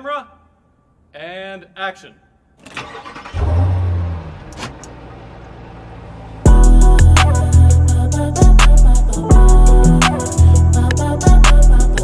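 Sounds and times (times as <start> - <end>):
car engine starting and revving: 2.7 - 7.8.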